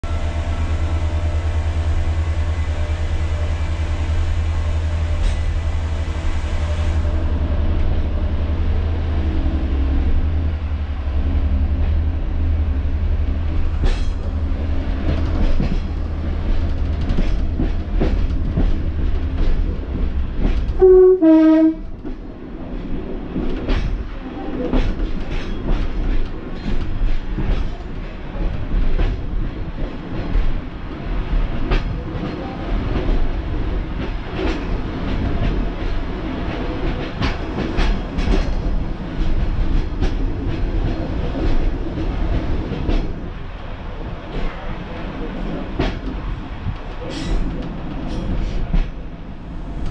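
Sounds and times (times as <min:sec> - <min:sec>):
diesel railbus rumble: 0:00.0 - 0:49.9.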